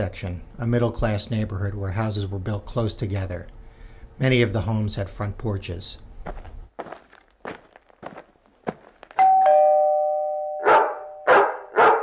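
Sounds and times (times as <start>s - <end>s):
two-note doorbell chime: 9.2s - 11.4s
dog barking loudly: 10.6s - 12.0s.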